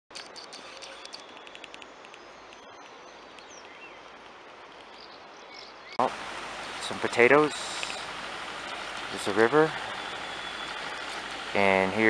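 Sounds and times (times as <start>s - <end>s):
small birds chirping: 0.2s - 12.0s
steady background hiss: 1.4s - 12.0s.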